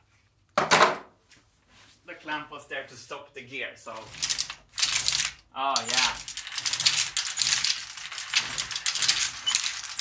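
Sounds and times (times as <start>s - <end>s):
steel marbles clattering in machine: 4.0s - 10.0s.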